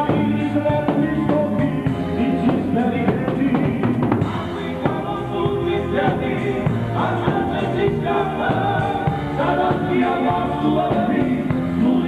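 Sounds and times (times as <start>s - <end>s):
drums: 0.0s - 12.0s
keyboard: 0.0s - 12.0s
man singing: 0.0s - 12.0s.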